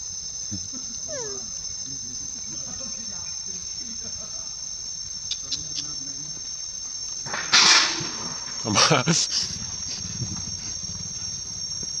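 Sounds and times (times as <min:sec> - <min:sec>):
insects droning: 0:00.0 - 0:12.0.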